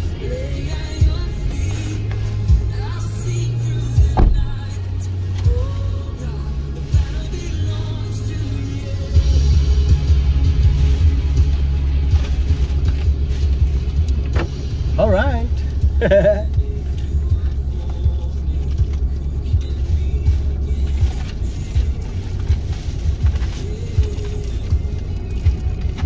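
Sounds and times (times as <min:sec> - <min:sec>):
music with deep bass line: 0:00.0 - 0:26.0.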